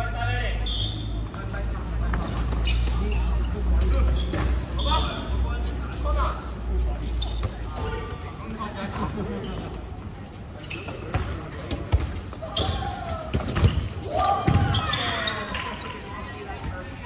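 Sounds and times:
dodgeballs smacking: 11.0 - 15.4
players shouting: 12.4 - 15.9.

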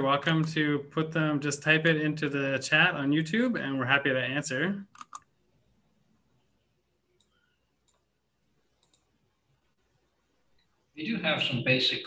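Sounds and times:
faint clicks: 7.2 - 8.1, 8.7 - 9.2.

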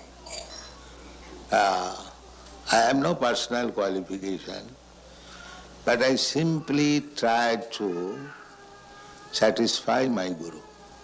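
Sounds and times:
steady low hum: 0.0 - 11.0
elderly man speaking into microphone: 1.5 - 2.0, 2.7 - 4.8, 5.8 - 8.3, 9.4 - 10.6.

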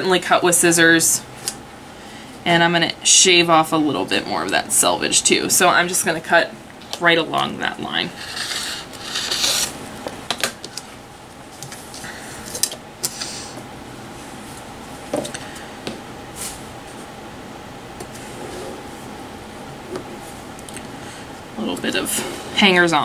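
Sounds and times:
rasping fabric cutting: 8.2 - 9.7
cloth rubbing and rustling: 18.1 - 19.2.

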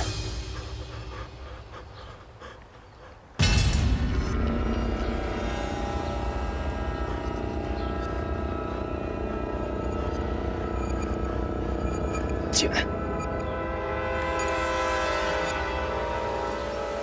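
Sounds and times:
tense film score: 0.0 - 17.0.

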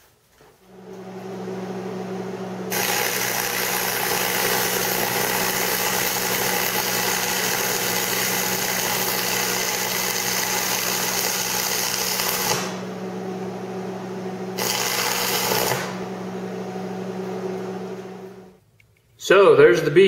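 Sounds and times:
welder low hum: 0.6 - 18.6
welding arc crackle: 2.7 - 12.8, 14.6 - 16.0.

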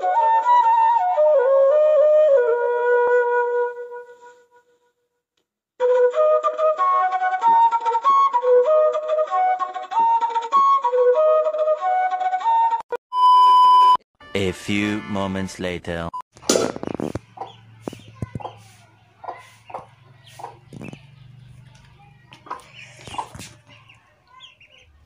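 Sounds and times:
flute melody: 0.0 - 4.6, 5.8 - 14.0
steady flute tone: 0.0 - 4.7, 5.8 - 13.9.

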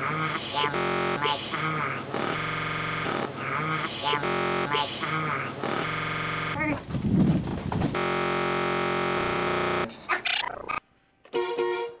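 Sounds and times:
distorted synthesizer tone: 0.0 - 6.6, 8.0 - 10.8.

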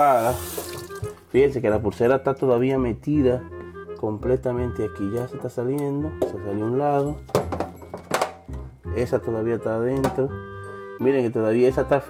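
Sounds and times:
background music: 0.0 - 12.0
ice knocking against steel sink: 7.3 - 8.4.

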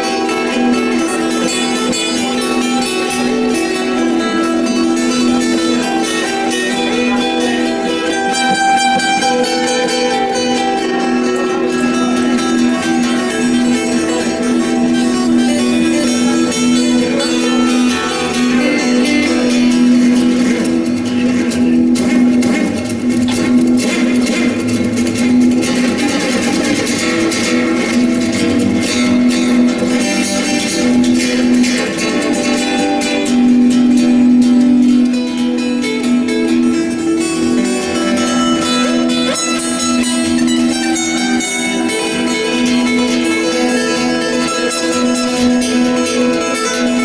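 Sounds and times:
fingerstyle acoustic guitar: 0.0 - 47.0.

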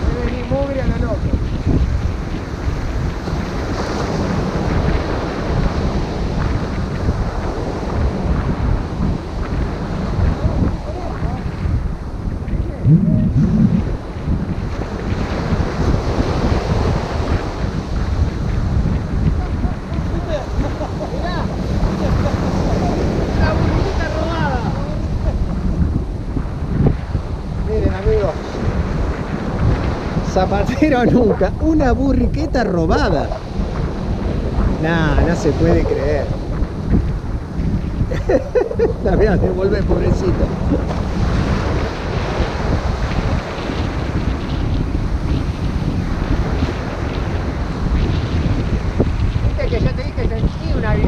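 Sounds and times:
waves breaking on beach: 0.0 - 51.0
wind buffeting microphone: 0.0 - 51.0.

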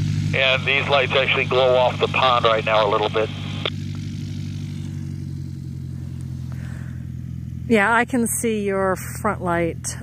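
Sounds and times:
airplane piston engine humming: 0.0 - 10.0.

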